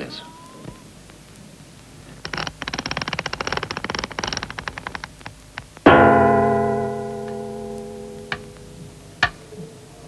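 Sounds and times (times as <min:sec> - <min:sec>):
fast mechanical clicks: 0:02.0 - 0:05.9.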